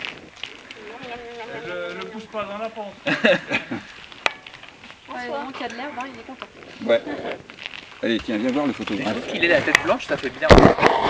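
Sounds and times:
person laughing: 0:03.0 - 0:04.0.

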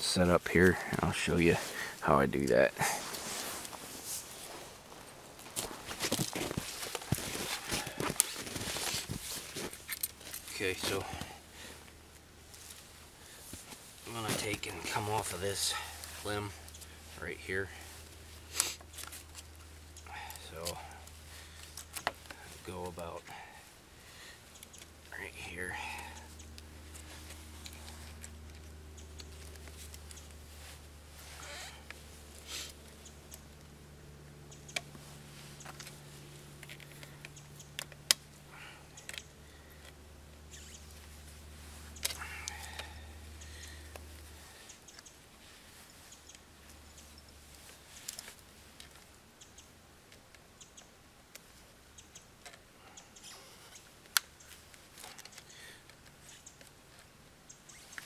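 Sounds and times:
gloved hands handling wire and twigs: 0:00.0 - 0:58.0
steady low hum: 0:00.0 - 0:58.0.

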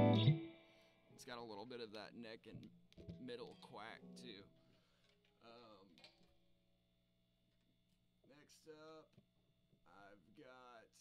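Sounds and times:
electric guitar notes: 0:00.0 - 0:00.6.

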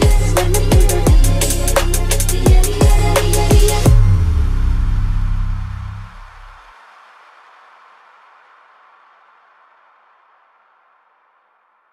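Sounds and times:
deep bass note: 0:00.0 - 0:06.6
reverb hiss: 0:00.0 - 0:11.9.

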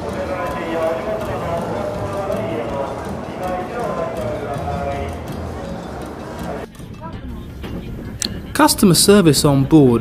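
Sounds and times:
murmur of voices: 0:00.0 - 0:08.6.

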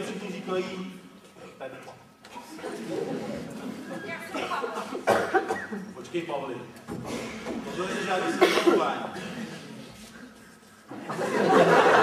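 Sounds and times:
actors speaking: 0:00.0 - 0:10.0
people coughing: 0:02.3 - 0:05.9, 0:07.0 - 0:10.6.

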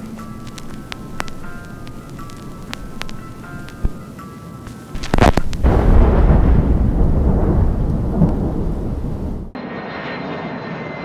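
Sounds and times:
jet aircraft with high whine: 0:00.0 - 0:05.6, 0:09.0 - 0:11.0
deep rumble: 0:05.0 - 0:09.6.

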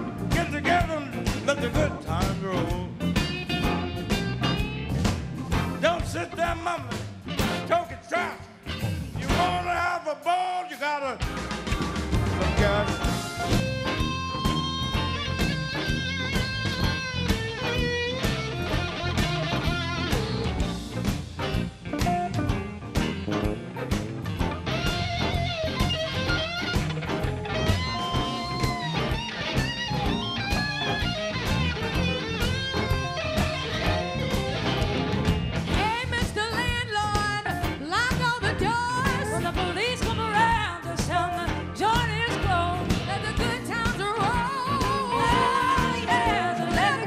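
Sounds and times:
bass guitar: 0:00.0 - 0:10.0, 0:11.1 - 0:47.0
drum kit: 0:00.0 - 0:10.3, 0:11.0 - 0:47.0
electric blues band playing: 0:00.0 - 0:47.0
organ: 0:11.2 - 0:35.8
lead electric guitar bent notes: 0:12.0 - 0:35.8.

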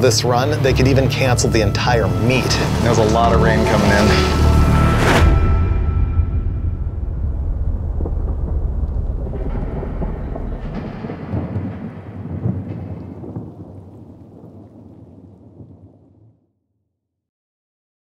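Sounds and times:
thunder rumbling and crackling: 0:00.0 - 0:16.5.

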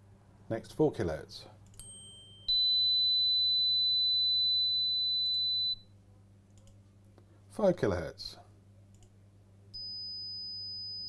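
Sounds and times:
sine test tone: 0:01.8 - 0:05.9, 0:09.7 - 0:11.0
click: 0:06.5 - 0:07.2, 0:08.9 - 0:09.1.

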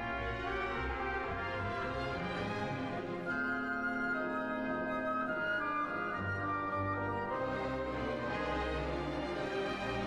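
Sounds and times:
french horn melody: 0:00.0 - 0:10.0.

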